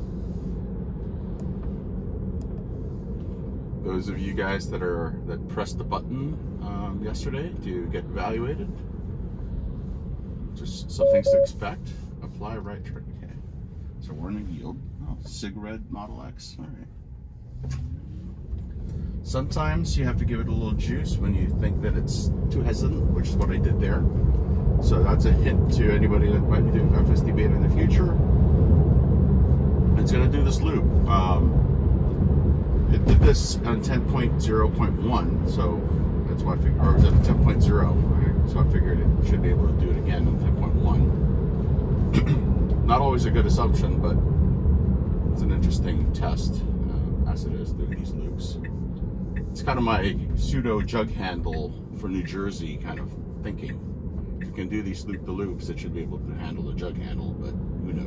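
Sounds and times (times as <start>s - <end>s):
tyre and road noise in car: 16.8s - 58.0s.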